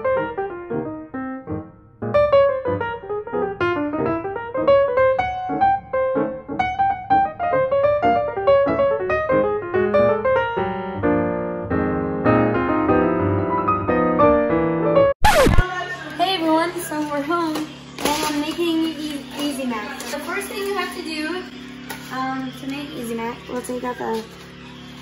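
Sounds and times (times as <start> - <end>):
piano music: 0.0 - 15.2.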